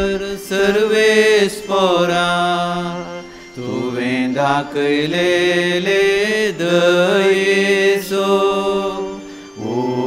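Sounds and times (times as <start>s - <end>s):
man singing chant-like psalm: 0.0s - 10.0s.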